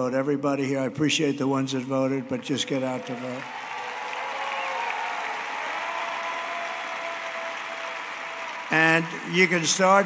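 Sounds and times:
large crowd applauding: 2.4s - 10.0s.

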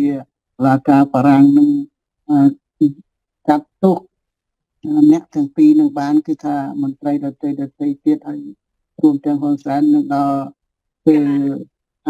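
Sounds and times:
person talking: 0.0s - 4.0s, 4.8s - 10.5s, 11.1s - 11.6s.

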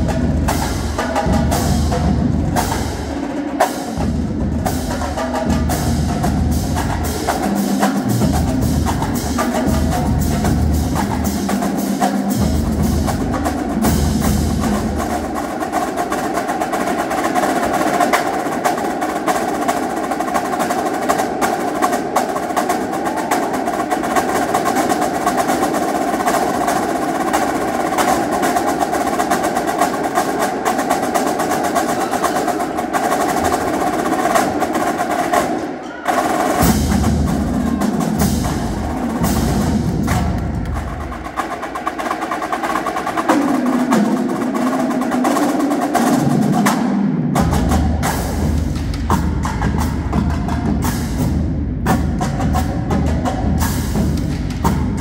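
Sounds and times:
marching drumline: 0.0s - 55.0s.

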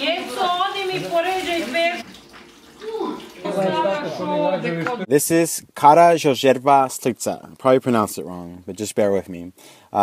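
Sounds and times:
faint kitchen room noise: 0.0s - 6.0s.

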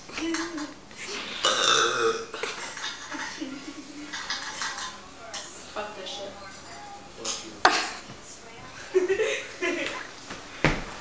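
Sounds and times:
person belching: 1.4s - 2.4s.

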